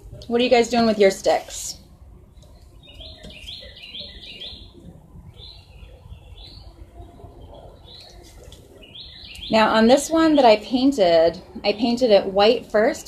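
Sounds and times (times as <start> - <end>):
songbird chirping: 2.1 - 11.9.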